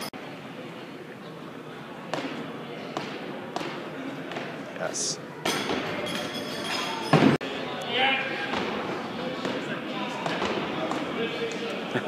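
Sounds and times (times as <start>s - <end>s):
dull thuds echoing in hall: 8.4s - 11.2s.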